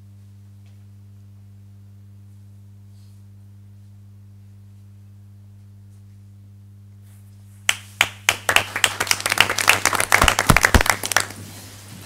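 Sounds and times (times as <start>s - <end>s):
steady electrical hum: 0.0s - 12.0s
group hand clapping: 7.7s - 11.4s.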